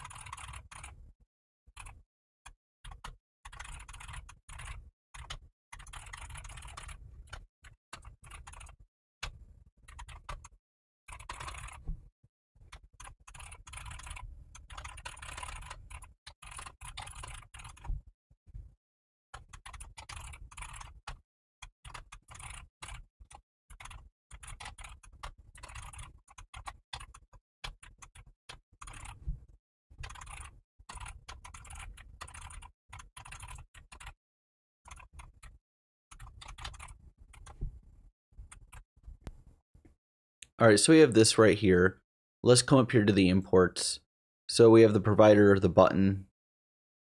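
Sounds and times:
computer keyboard typing: 0.0s - 1.0s, 1.7s - 2.0s, 2.8s - 11.9s, 12.6s - 18.0s, 19.3s - 34.2s, 34.8s - 37.6s.

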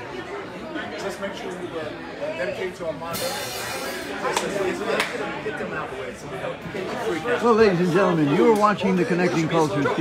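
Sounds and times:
short hissing crash: 3.1s - 4.0s.

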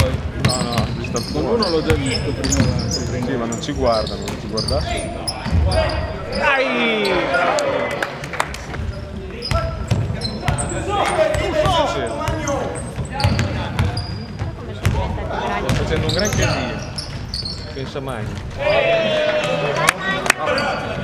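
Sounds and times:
basketball bouncing on wooden floor: 11.4s - 15.1s
people calling out: 18.6s - 20.8s.

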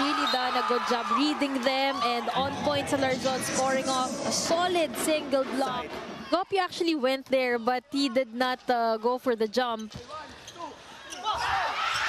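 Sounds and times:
crowd cheering: 0.0s - 4.0s
sneakers squeaking on court: 9.6s - 12.0s.

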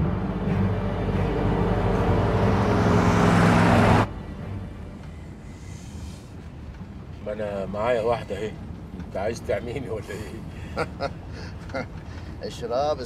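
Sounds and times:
low music: 0.0s - 7.2s
low rumble: 0.0s - 7.2s
car engine and road noise: 0.0s - 13.0s.

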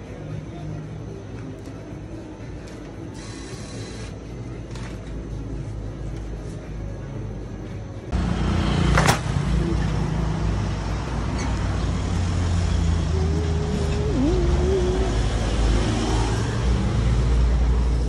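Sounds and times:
street traffic rumble: 8.1s - 18.0s
wavering tone: 12.6s - 16.4s.

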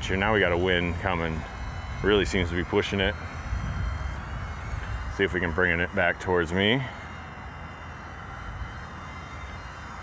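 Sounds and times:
wind buffeting microphone: 0.0s - 5.7s.

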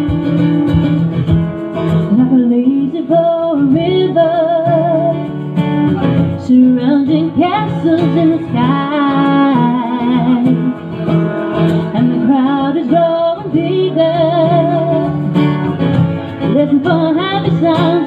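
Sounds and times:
strummed acoustic guitar: 0.0s - 18.0s.

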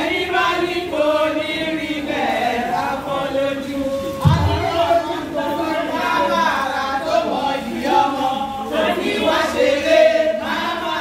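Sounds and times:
women singing together: 0.0s - 11.0s.

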